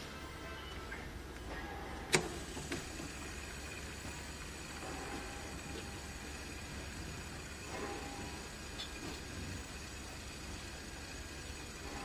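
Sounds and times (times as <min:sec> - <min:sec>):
fidget spinner whirring: 0:02.3 - 0:12.0.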